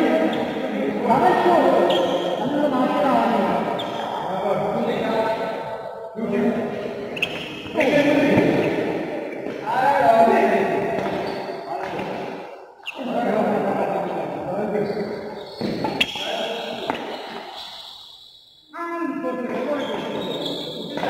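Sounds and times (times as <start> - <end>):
people's voices in echoing hall: 0.0 - 21.0.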